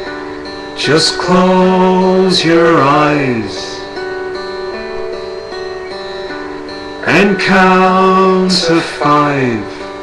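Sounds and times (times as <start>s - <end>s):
plucked guitar accompaniment: 0.0s - 10.0s
person singing: 0.6s - 4.0s, 6.9s - 10.0s.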